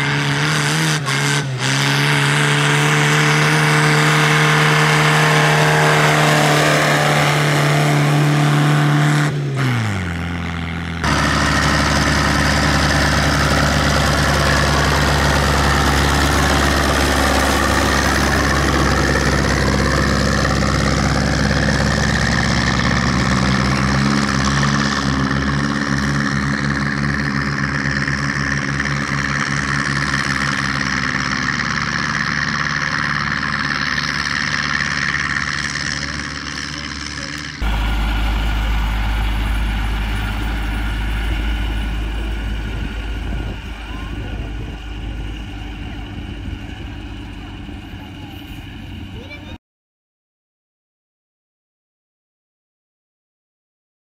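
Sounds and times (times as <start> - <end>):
tractor engine running: 0.0 - 49.6
diesel tractor engine chugging: 1.1 - 49.6.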